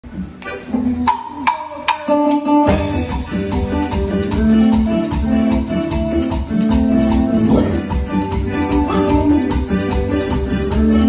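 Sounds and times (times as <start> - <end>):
sharp percussive strikes: 1.1 - 10.5
accordion notes: 2.7 - 11.0.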